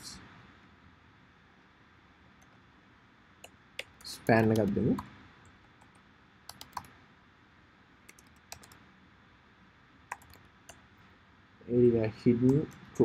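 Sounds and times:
keystrokes on computer keyboard: 3.4 - 5.1, 5.8 - 7.0, 8.1 - 8.8, 10.1 - 10.8.

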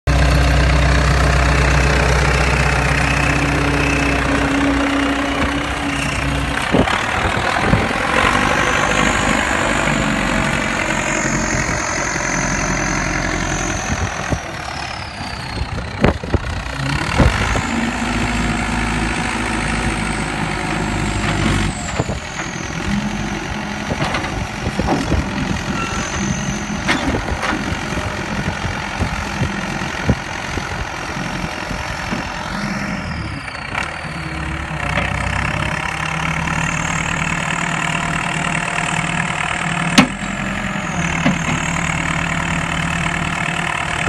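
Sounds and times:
backhoe loader engine running: 0.0 - 44.0.

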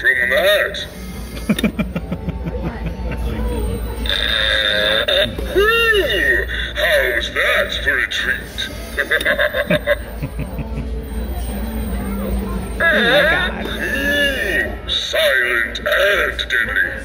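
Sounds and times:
buzzing fart sound effect: 4.0 - 5.5
recorded joke voice: 12.8 - 14.7.

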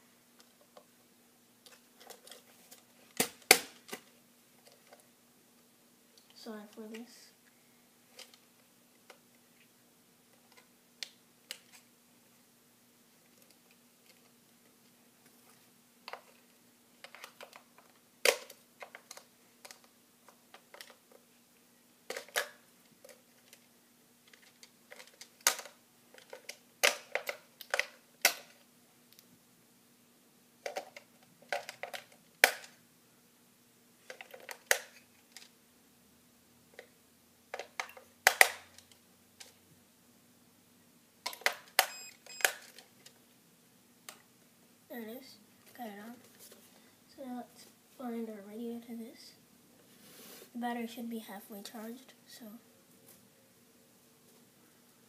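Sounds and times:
faint steady hum: 0.0 - 55.0
small plastic parts clicking: 16.1 - 21.2, 22.1 - 23.7, 24.3 - 29.2, 30.6 - 32.8, 34.0 - 35.5, 37.5 - 39.6.

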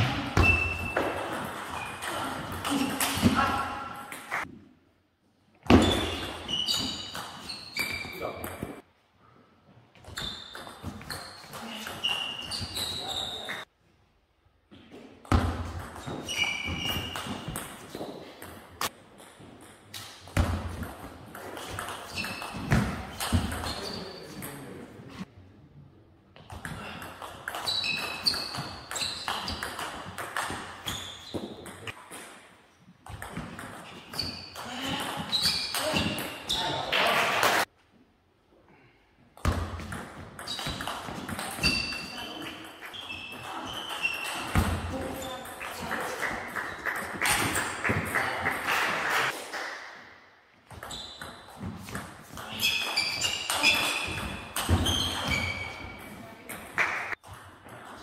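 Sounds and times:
shoes squeaking on wooden floor: 5.7 - 8.8, 10.0 - 13.7, 15.9 - 18.1, 21.6 - 24.4, 27.6 - 29.8, 30.4 - 32.0, 33.8 - 37.1, 39.8 - 47.6, 50.7 - 56.5.

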